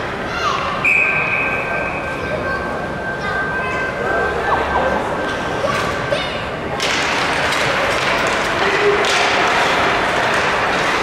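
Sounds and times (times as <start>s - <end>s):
murmur of crowd voices: 0.0s - 11.0s
hockey sticks knocking on ice: 6.8s - 11.0s.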